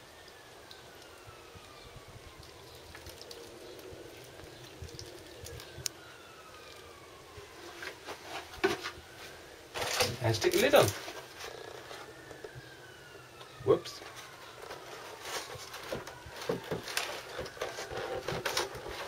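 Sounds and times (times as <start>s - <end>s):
faint siren wailing: 0.0s - 19.0s.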